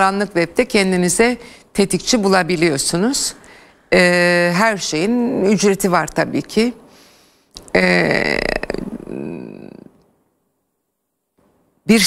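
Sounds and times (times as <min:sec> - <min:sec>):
person's wordless drawn-out vocal: 0:07.6 - 0:10.0.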